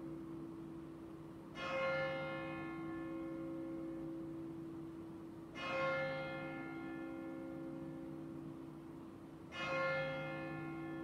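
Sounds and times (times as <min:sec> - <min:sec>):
church bell tolling: 0:01.5 - 0:04.7, 0:05.5 - 0:08.6, 0:09.4 - 0:11.0.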